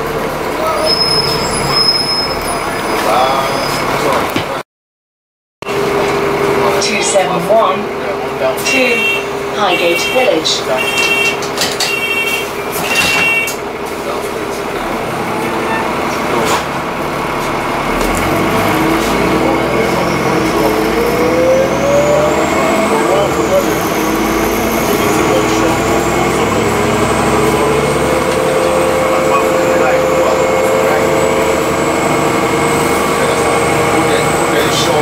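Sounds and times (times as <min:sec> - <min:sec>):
bus engine accelerating: 0:00.0 - 0:04.6, 0:05.6 - 0:35.0.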